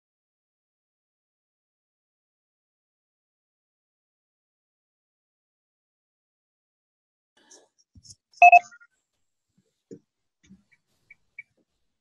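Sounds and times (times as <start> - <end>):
short electronic beeps: 8.4 - 8.8.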